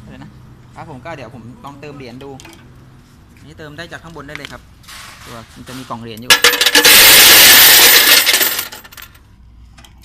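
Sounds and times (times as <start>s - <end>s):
coins clattering into a box: 6.3s - 9.2s.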